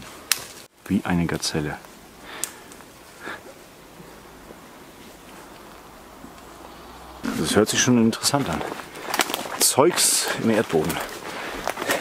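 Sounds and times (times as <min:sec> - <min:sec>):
footsteps crunching through dry leaves: 0:04.5 - 0:12.0.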